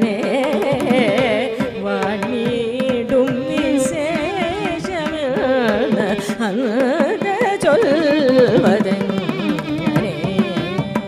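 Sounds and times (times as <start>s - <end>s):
hand drum strokes: 0.0s - 11.0s
violin: 0.0s - 11.0s
woman singing: 0.0s - 11.0s.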